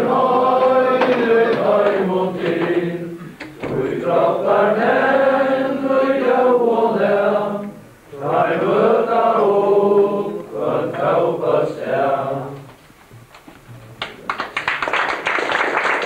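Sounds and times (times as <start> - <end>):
group of people singing: 0.0 - 12.8.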